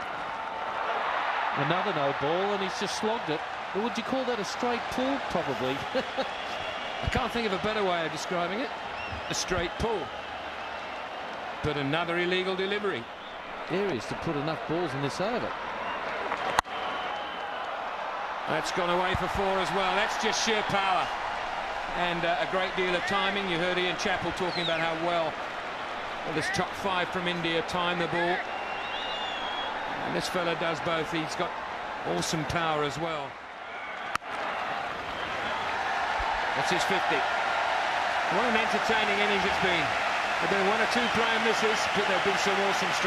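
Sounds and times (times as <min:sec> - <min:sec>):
stadium crowd noise: 0:00.0 - 0:43.0.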